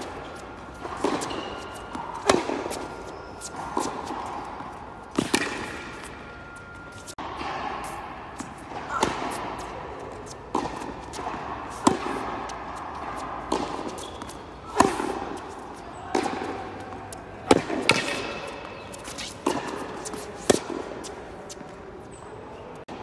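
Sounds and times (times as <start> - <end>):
tennis ball struck and bouncing: 0.0 - 21.7.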